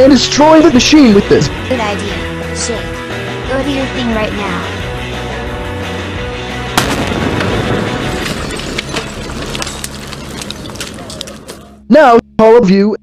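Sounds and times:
background music: 0:00.0 - 0:12.4
cartoon explosion blast: 0:06.8 - 0:09.2
crackling: 0:06.8 - 0:11.8.

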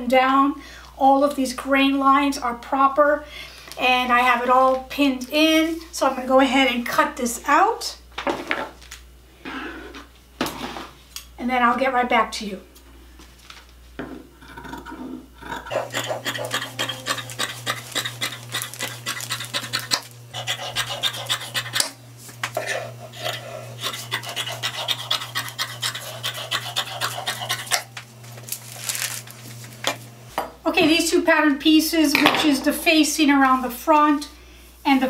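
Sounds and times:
steady low hum: 0:09.0 - 0:35.0.

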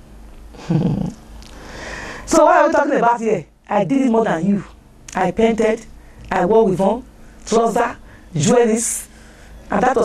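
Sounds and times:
low background hum: 0:00.0 - 0:10.0
woman humming: 0:00.6 - 0:01.2.

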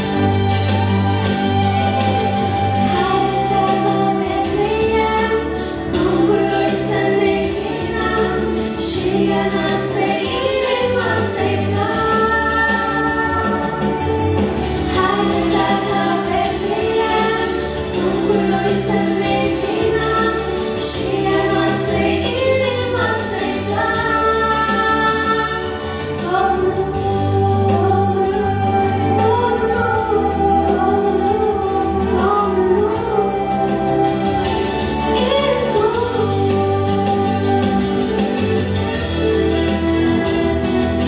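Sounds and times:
low instrumental accompaniment: 0:00.0 - 0:41.0
two women singing carol: 0:02.9 - 0:14.3, 0:14.9 - 0:34.5.

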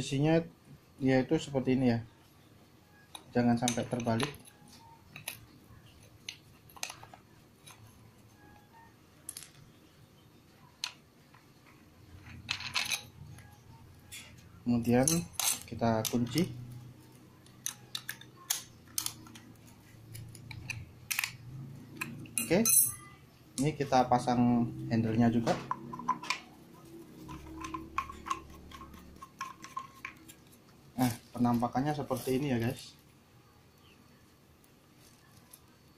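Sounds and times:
metallic clicks and clinks: 0:12.2 - 0:13.5, 0:14.1 - 0:16.6, 0:17.4 - 0:19.5.

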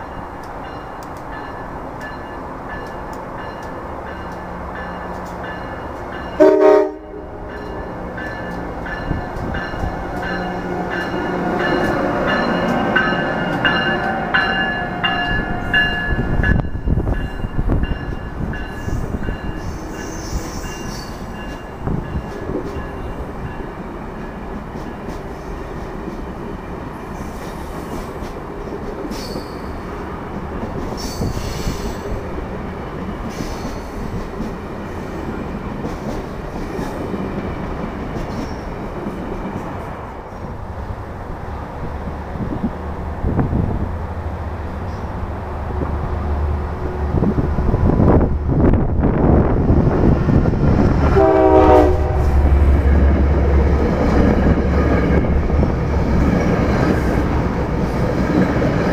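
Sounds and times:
locomotive high whine: 0:00.0 - 0:28.7, 0:37.2 - 0:58.9
train rumbling past: 0:00.0 - 0:58.9.

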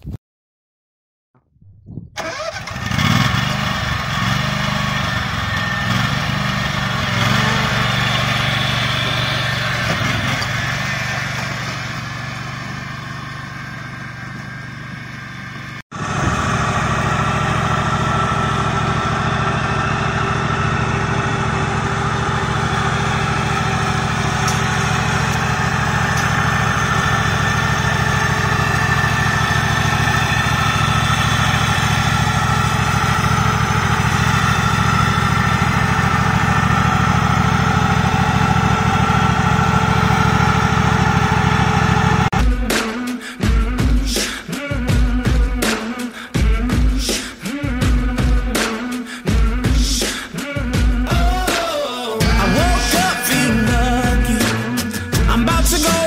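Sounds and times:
ride-on mower engine running: 0:02.2 - 0:44.0, 0:50.4 - 0:56.0.

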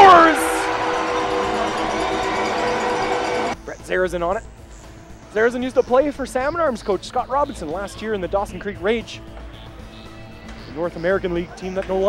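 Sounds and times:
arena goal horn: 0:00.0 - 0:03.6
crowd cheering: 0:00.0 - 0:03.6.

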